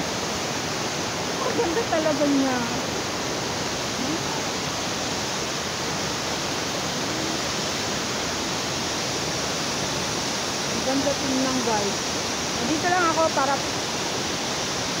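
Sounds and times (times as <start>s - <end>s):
waterfall rushing: 0.0s - 15.0s.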